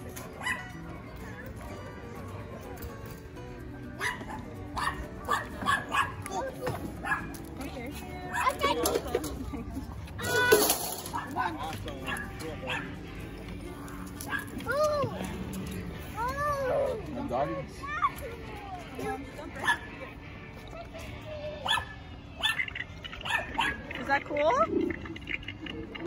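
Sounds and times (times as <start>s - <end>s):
dogs barking: 0.3s - 1.0s, 4.0s - 7.5s, 11.0s - 13.1s, 14.1s - 15.0s, 19.6s - 20.2s, 21.6s - 25.4s.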